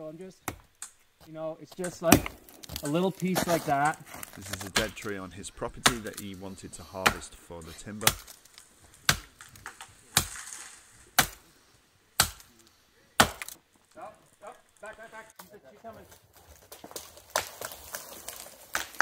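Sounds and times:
axe chopping tree trunk: 0:01.8 - 0:06.3, 0:07.0 - 0:08.4, 0:09.0 - 0:10.5, 0:11.1 - 0:11.4, 0:12.2 - 0:12.6, 0:13.2 - 0:13.6.

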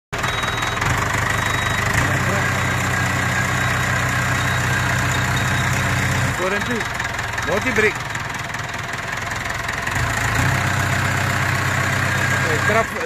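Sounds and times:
diesel engine idling: 0:00.2 - 0:13.0.

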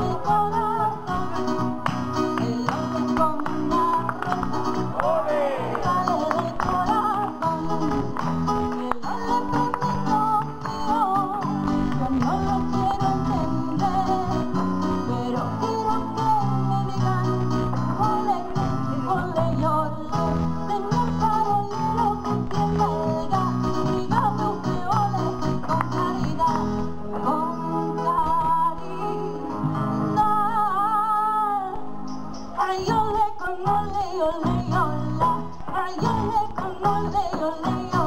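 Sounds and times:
woman singing into a microphone: 0:00.0 - 0:04.9, 0:05.6 - 0:38.0
guitar accompaniment: 0:00.0 - 0:38.0.

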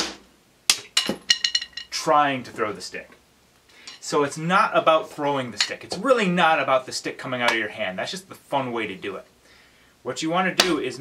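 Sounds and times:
drumstick striking practice pad: 0:00.0 - 0:02.0, 0:10.6 - 0:10.8.

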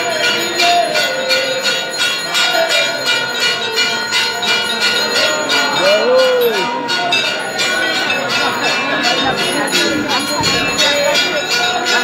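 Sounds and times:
crowd voices: 0:00.0 - 0:12.0
temple bells ringing: 0:00.0 - 0:12.0.

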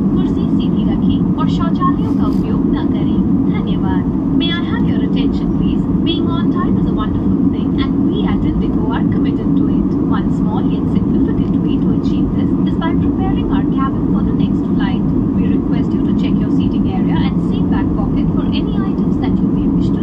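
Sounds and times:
airliner cabin engine roar: 0:00.0 - 0:20.0
faint passenger voices: 0:00.0 - 0:20.0.

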